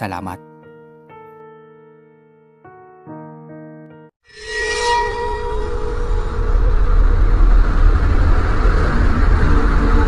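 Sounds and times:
deep rumble: 5.6s - 10.0s.

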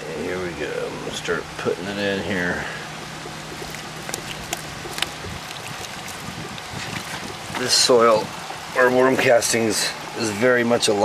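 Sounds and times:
faint pump hum: 0.0s - 11.0s
air pump bubbling water: 0.1s - 10.2s
light ticks in water: 2.8s - 7.7s.

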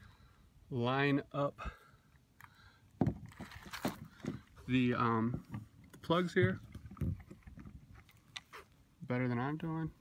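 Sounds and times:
plastic plug knocking and scraping: 5.2s - 8.5s.

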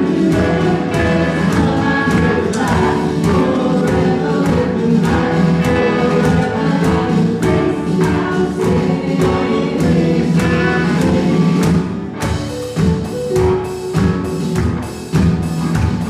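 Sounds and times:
group of voices singing: 0.0s - 12.1s
acoustic guitars: 0.0s - 16.0s
keyboard: 0.0s - 16.0s
steady drum beat: 0.0s - 16.0s.

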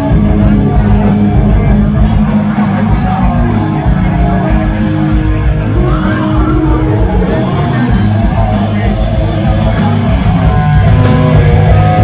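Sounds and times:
drum kit: 0.0s - 12.0s
electric guitar: 0.0s - 12.0s
live rock band playing: 0.0s - 12.0s.

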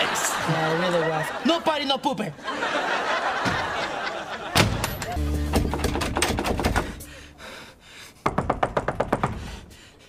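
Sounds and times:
rapid knocking on wooden door: 8.2s - 9.5s.

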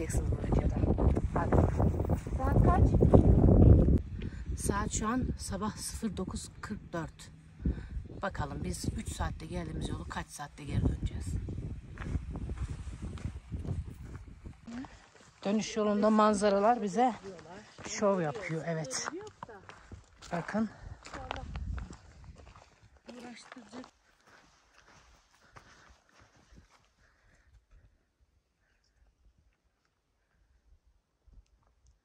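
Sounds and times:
footsteps on grassy stony ground: 10.8s - 27.1s.

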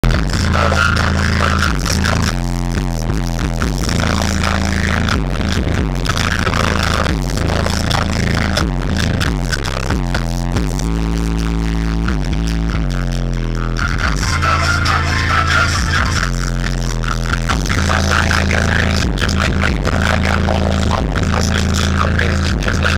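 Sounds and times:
loud bass-heavy music from subwoofers: 0.0s - 22.9s.

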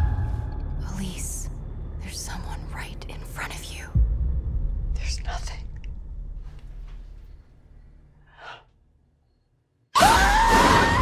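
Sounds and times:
low rumble: 0.0s - 8.3s.

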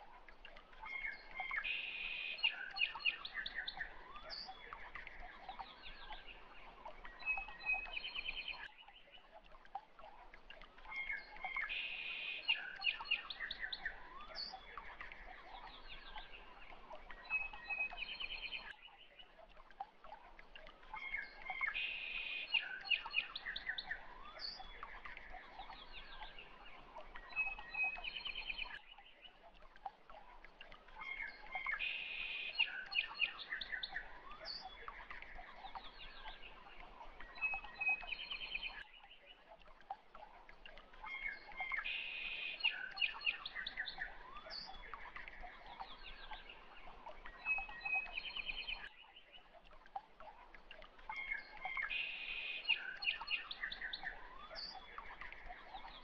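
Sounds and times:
birdsong chirps and trills: 0.0s - 56.0s.

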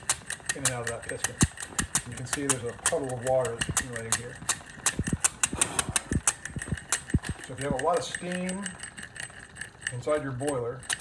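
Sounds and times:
model steam engine clicking and puffing: 0.0s - 11.0s.

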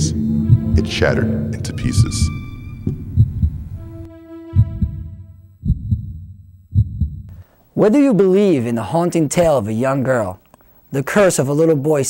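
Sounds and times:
held musical note: 0.0s - 5.6s
heartbeat double thumps: 0.0s - 7.3s.

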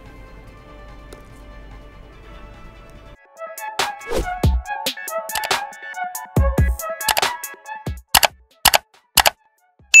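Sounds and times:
mouse double clicks: 8.2s - 9.4s.

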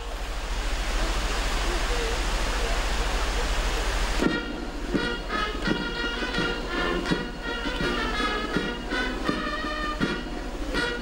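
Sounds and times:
fountain water rushing: 0.0s - 11.0s
brass band playing: 4.2s - 11.0s.

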